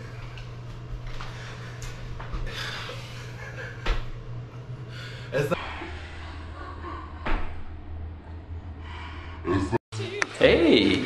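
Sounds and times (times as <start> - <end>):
low room hum: 0.0 - 11.0
man breathing heavily: 1.1 - 3.8, 4.8 - 7.2.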